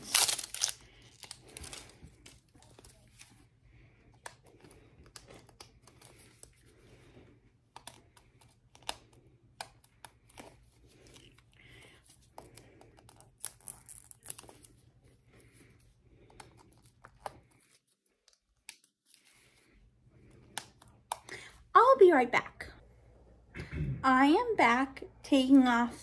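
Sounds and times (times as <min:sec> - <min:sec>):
packaging crinkling and tearing: 0:00.0 - 0:03.3, 0:13.1 - 0:14.7.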